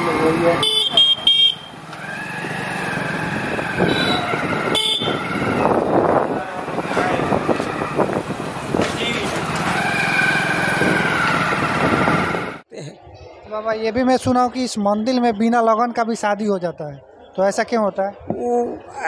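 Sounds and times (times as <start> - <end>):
motorcycles and vehicles passing: 0.0 - 19.0
people talking: 12.7 - 19.0.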